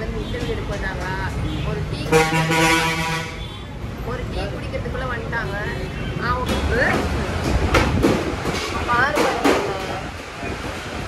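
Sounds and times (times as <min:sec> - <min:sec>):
street noise: 0:00.0 - 0:11.0
voices: 0:00.0 - 0:11.0
vehicle horn honk: 0:02.1 - 0:03.7.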